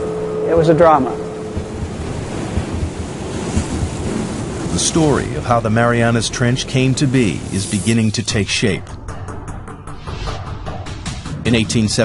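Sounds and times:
sea rushing: 0.0 - 9.1
low rumble: 0.0 - 11.6.

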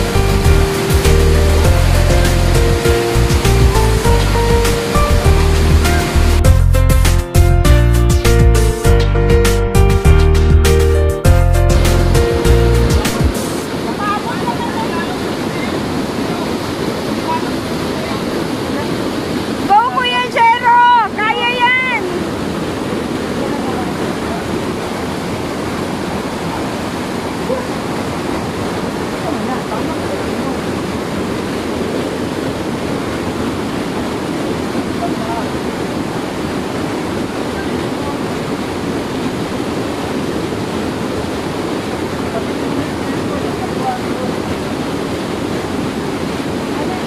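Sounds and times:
waterfall rushing over rocks: 0.0 - 8.9, 10.0 - 47.0.

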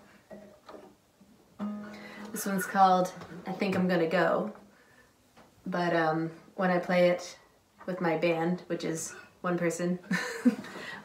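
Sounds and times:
acoustic guitar notes plucked: 1.6 - 3.9.

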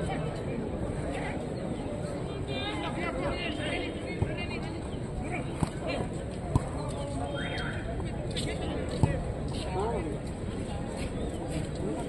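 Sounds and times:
voices of players and spectators: 0.0 - 12.0.

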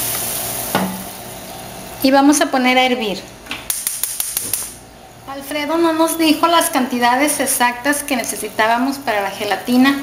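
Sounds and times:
gas hissing: 0.0 - 2.1.

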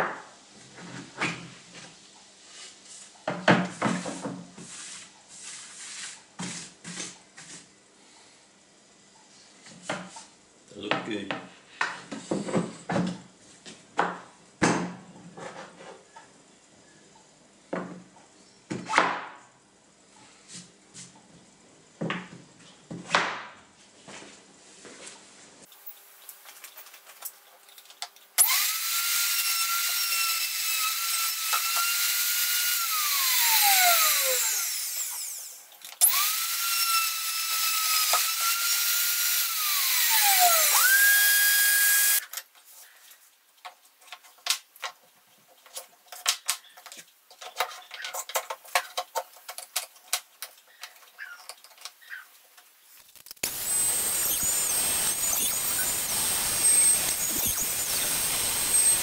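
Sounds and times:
router running high-pitched: 28.4 - 42.2, 53.4 - 59.0
router winding down whine: 28.4 - 42.2, 53.4 - 59.0
steady hiss with high whistle: 53.4 - 59.0.

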